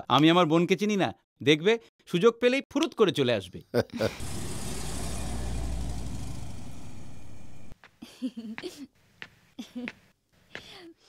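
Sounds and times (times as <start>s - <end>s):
hiss: 4.2s - 7.1s
low rumbling noise: 4.2s - 7.8s.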